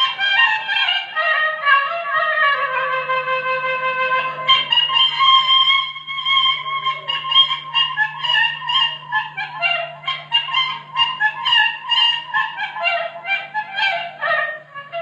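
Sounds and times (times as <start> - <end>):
steady low hum: 0.0 - 15.0
wind instrument fast melody: 0.0 - 15.0.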